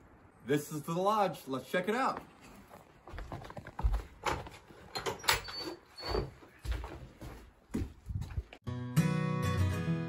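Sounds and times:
heavy footsteps on wooden boards: 0:03.0 - 0:04.9, 0:06.1 - 0:08.6.

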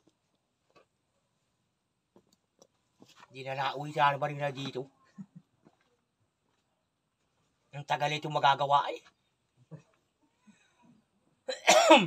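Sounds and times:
person coughing: 0:11.5 - 0:12.0.

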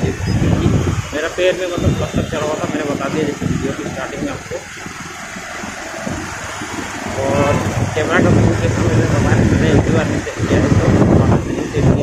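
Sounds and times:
motorcycle road noise: 0:00.0 - 0:12.0
wind rushing: 0:00.0 - 0:12.0.

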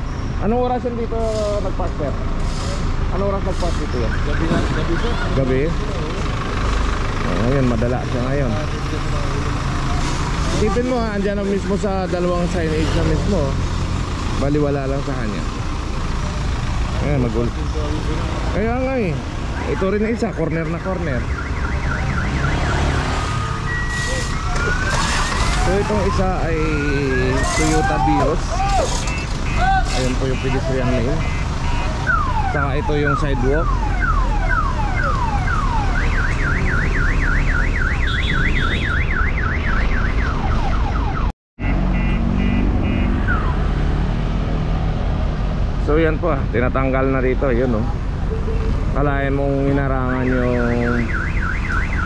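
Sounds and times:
electronic siren yelping: 0:21.0 - 0:28.2, 0:30.5 - 0:41.3, 0:41.9 - 0:43.7, 0:49.7 - 0:52.0
car alarm whooping and beeping: 0:21.0 - 0:41.3, 0:41.9 - 0:43.6, 0:49.8 - 0:52.0.

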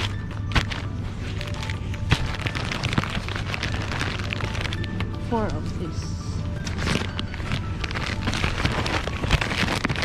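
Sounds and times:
plastic packaging crinkling: 0:00.0 - 0:10.0.

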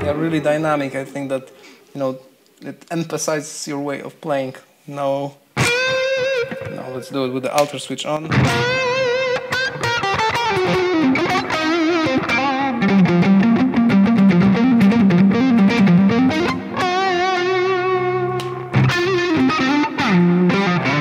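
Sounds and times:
overdriven electric guitar lead: 0:05.6 - 0:06.9, 0:08.3 - 0:21.0.

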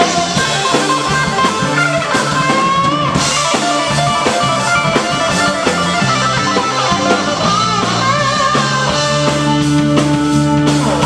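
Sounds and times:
funk-rock band playing: 0:00.0 - 0:11.0
wavering bending lead note: 0:00.0 - 0:11.0.

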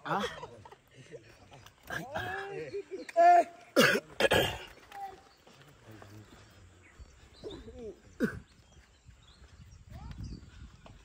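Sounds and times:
voices calling in short phrases: 0:01.8 - 0:06.4
loud rough coughing: 0:03.7 - 0:04.7, 0:08.1 - 0:08.5.

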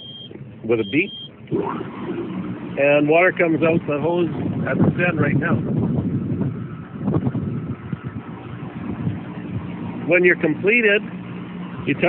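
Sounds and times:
wind buffeting microphone: 0:01.5 - 0:12.0.

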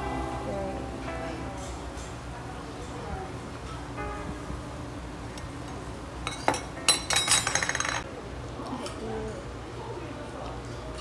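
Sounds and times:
metal tableware clinking: 0:05.7 - 0:08.0.

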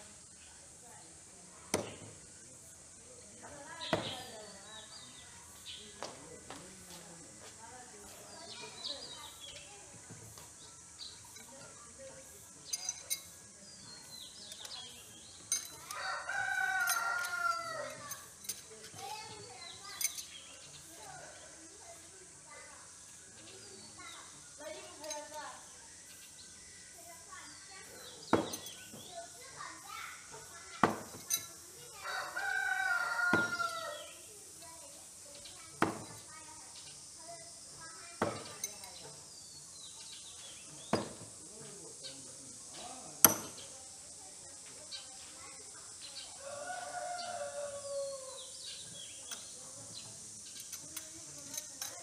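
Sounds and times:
knives thudding into wooden log: 0:01.7 - 0:02.2, 0:03.8 - 0:04.3, 0:28.3 - 0:29.0, 0:30.8 - 0:31.5, 0:33.3 - 0:33.6, 0:35.8 - 0:36.2, 0:38.2 - 0:38.8, 0:40.9 - 0:41.4, 0:43.2 - 0:43.7
rooster crowing: 0:15.9 - 0:18.0, 0:32.0 - 0:34.1, 0:46.4 - 0:48.4.

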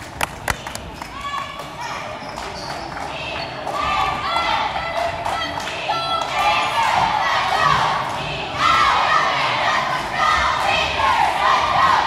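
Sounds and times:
cheerleaders yelling a chant: 0:03.1 - 0:12.0.

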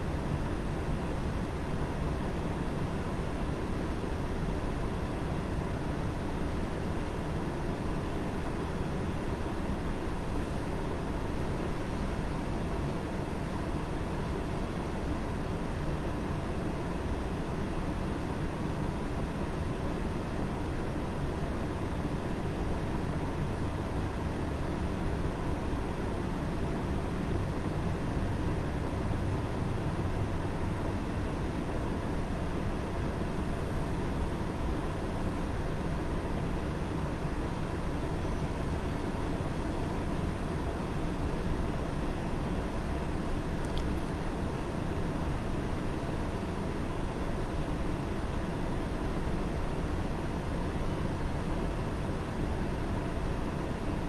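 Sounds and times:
faint constant hum: 0:00.0 - 0:54.0.

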